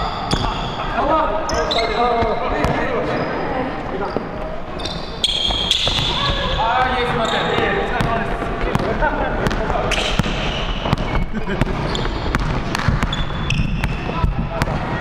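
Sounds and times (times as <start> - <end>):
sneakers squeaking: 0.0 - 15.0
basketballs bouncing on wood floor: 5.2 - 15.0.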